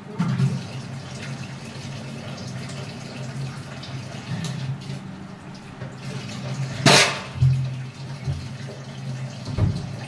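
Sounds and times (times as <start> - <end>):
tap water running into sink: 0.1 - 10.0.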